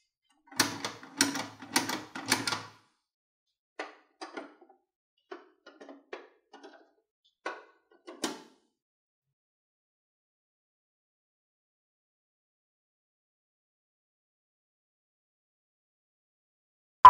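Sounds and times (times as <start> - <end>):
plastic toy doors clacking: 0.6 - 2.8.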